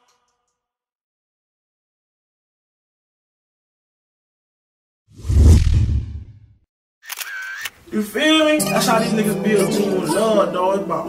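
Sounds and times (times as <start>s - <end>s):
man's voice over music: 8.0s - 11.0s.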